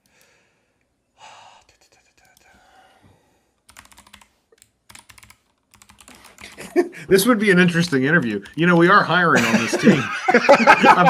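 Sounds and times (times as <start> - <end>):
computer keyboard typing: 3.6 - 6.8, 7.6 - 9.1.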